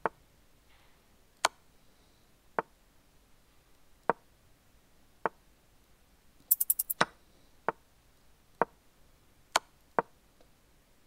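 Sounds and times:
sharp bright clicks: 6.5 - 7.0.

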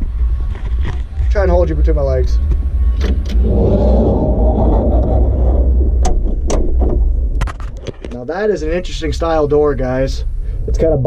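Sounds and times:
cab door scraping slide: 3.0 - 7.1.

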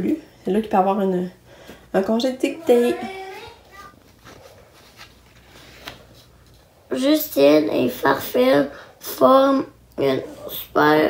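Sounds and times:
paper rustling: 3.7 - 6.7.

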